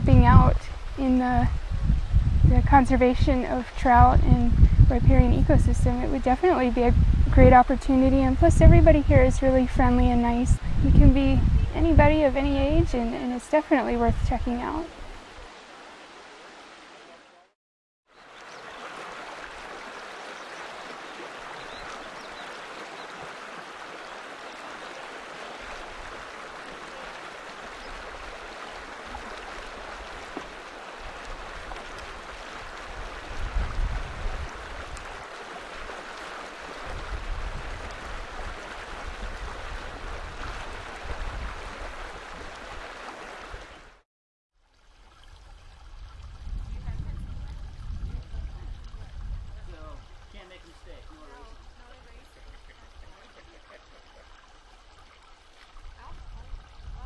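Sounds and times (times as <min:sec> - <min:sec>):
river water rushing: 0:14.6 - 0:17.5, 0:18.2 - 0:44.0.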